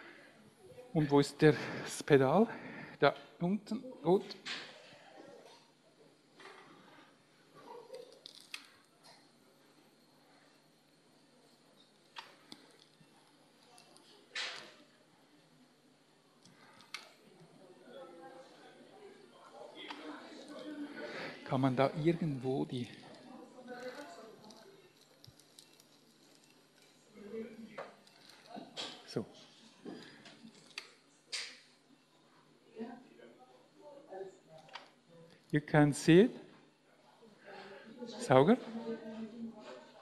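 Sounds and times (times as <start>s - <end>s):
faint low speech: 13.0s - 25.3s.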